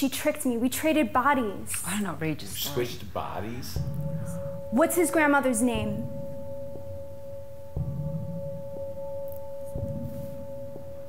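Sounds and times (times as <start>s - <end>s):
steady tone: 1.3s - 11.0s
fainter higher tone: 2.6s - 11.0s.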